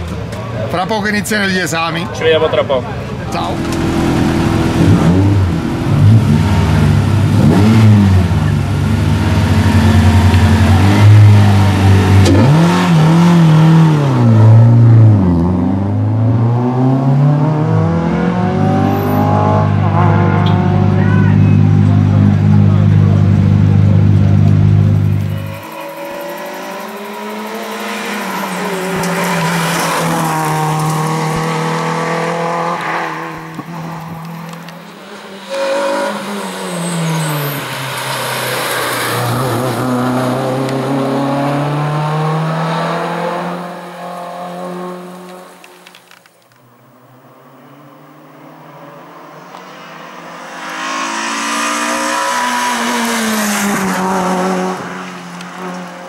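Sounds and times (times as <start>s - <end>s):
car engine revving hard: 3.6s - 21.0s, 21.6s - 34.3s, 34.9s - 45.3s, 48.8s - 55.9s.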